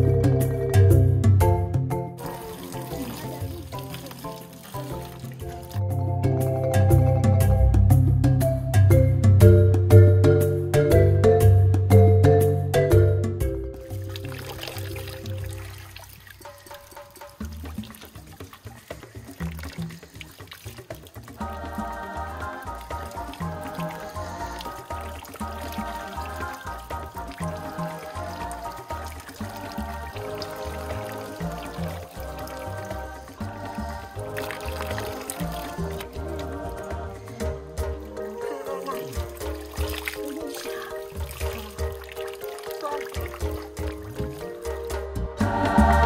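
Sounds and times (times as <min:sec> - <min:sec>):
background music with bass line: 0:00.0 - 0:15.8, 0:16.8 - 0:46.0
water pouring into plastic bucket: 0:02.2 - 0:05.8, 0:13.8 - 0:45.0.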